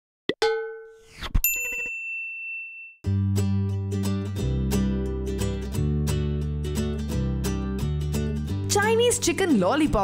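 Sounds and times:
ringing ding: 0.3s - 3.0s.

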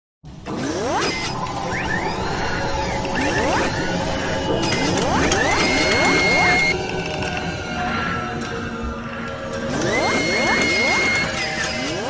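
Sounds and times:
whirring machinery: 0.4s - 12.0s
rising servo-like sweeps: 0.5s - 7.0s, 8.8s - 12.0s
held tone: 1.6s - 6.8s.

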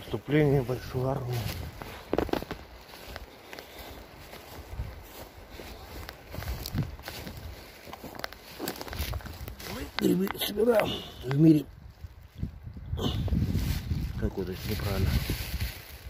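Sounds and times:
footsteps through moss and shrubs: 0.0s - 16.0s
plants rustling: 0.0s - 16.0s.

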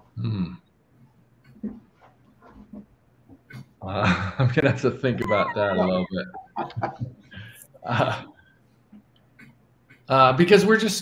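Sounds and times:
person speaking: 4.9s - 7.8s.

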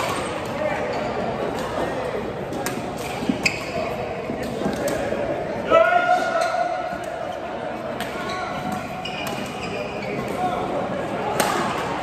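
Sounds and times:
background chatter: 0.0s - 12.0s
racket hitting shuttlecock: 11.3s - 11.9s.

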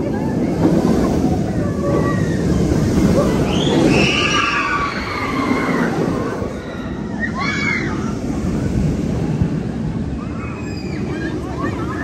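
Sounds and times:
roller coaster train rumbling on track: 0.0s - 12.0s
riders shrieking: 1.9s - 8.2s.

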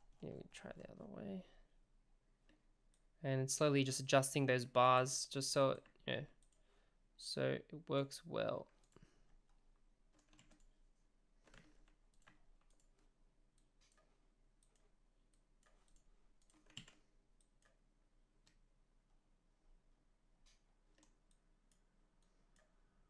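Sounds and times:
computer mouse and keyboard clicking: 8.7s - 10.8s, 11.4s - 17.8s.

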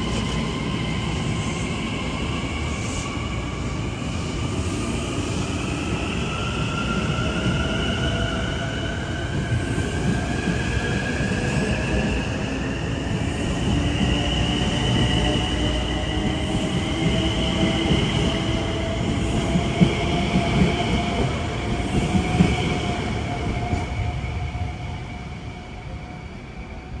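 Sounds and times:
steel wheels rumbling on rail: 0.0s - 27.0s.

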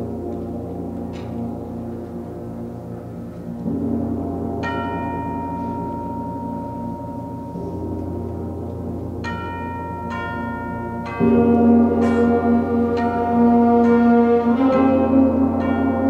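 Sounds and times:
band holding low wind chords: 0.0s - 16.0s
tubular bells struck: 3.6s - 16.0s.

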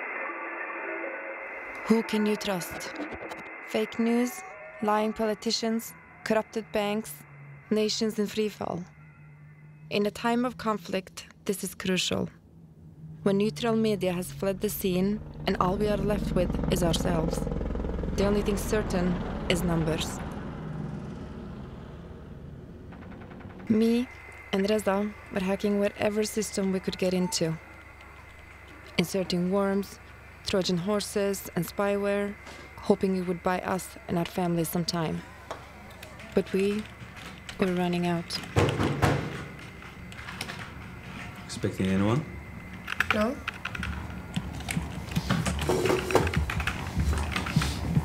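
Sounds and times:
low rumbling drone: 0.0s - 38.6s
steady low hum: 0.0s - 48.0s
keyboard typing: 42.8s - 48.0s.

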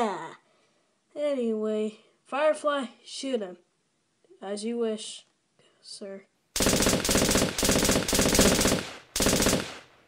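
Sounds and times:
automatic gunfire bursts: 6.6s - 10.0s.

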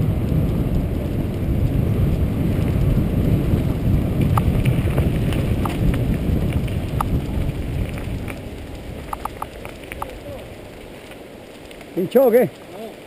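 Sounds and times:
wind buffeting microphone: 0.0s - 12.0s
bike tyres rumbling on rough track: 0.0s - 13.0s.

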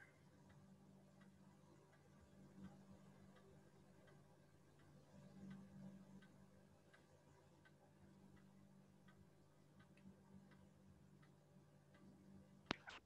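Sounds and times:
soft ticks: 0.0s - 13.0s.

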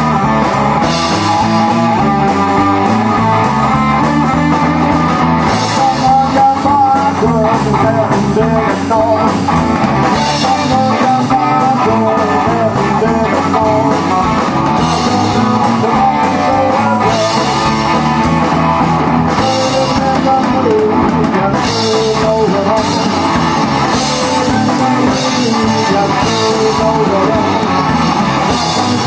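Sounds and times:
instrumental blues band playing: 0.0s - 29.0s.

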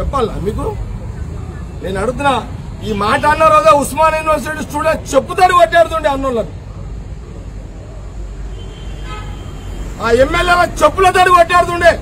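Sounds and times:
road traffic rumble: 0.0s - 12.0s
vehicle horn toot: 8.5s - 9.8s.

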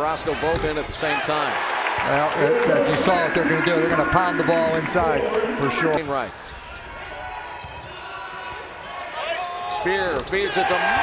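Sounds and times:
crowd murmur: 2.1s - 6.2s.

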